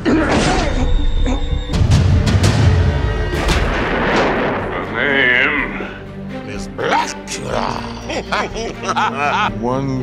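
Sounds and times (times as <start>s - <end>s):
trailer score music: 0.0s - 10.0s.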